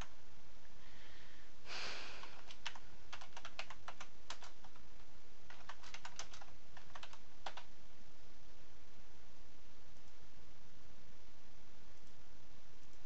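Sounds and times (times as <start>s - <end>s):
keyboard typing: 2.2s - 7.7s.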